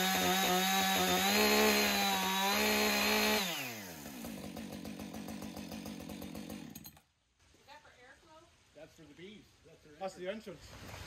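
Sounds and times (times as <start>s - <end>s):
chainsaw running: 0.0s - 7.1s.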